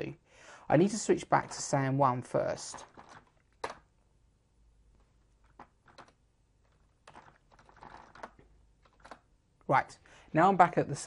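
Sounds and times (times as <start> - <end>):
computer keyboard typing: 2.6 - 3.9, 5.4 - 9.3.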